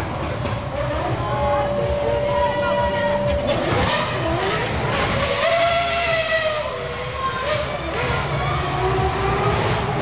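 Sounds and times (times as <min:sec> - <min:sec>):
crowd noise: 0:00.0 - 0:10.0
racing car engine revving: 0:00.0 - 0:10.0.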